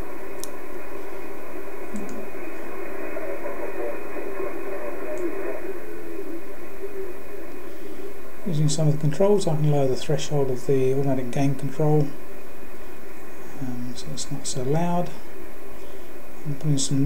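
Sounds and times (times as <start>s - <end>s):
faint wavering signal tones: 0.0s - 17.0s
radio hiss and static: 0.0s - 17.0s
faint clicks: 0.3s - 0.6s, 1.8s - 5.7s.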